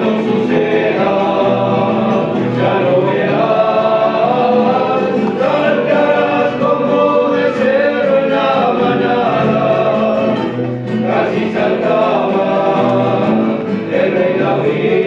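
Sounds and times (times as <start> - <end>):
men's gospel group singing: 0.0 - 15.0.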